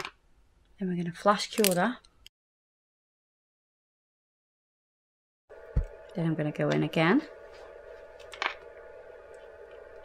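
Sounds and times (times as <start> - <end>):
faint steady hum: 5.5 - 10.0.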